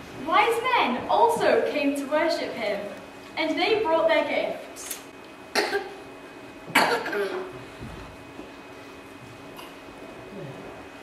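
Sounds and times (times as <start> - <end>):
person coughing: 5.5 - 6.0, 6.7 - 7.6.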